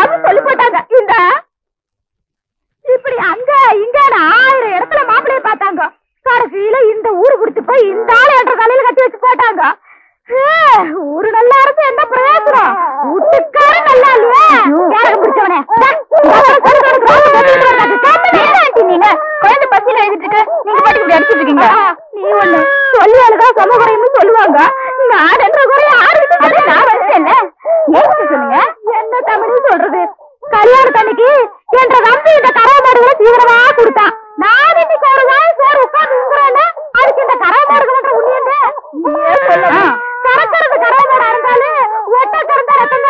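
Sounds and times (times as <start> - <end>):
woman wailing and crying: 0.0 - 1.1, 3.0 - 5.9, 6.7 - 43.0.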